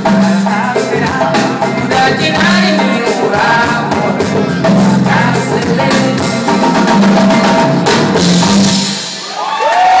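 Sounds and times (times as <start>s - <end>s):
bass line: 0.0s - 9.4s
drums: 0.0s - 10.0s
live band playing: 0.0s - 10.0s.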